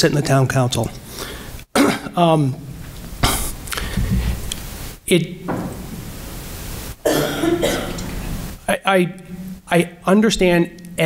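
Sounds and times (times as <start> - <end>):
room noise hiss: 0.0 - 11.0
man clearing throat: 1.7 - 2.2, 3.2 - 3.6, 7.0 - 8.1.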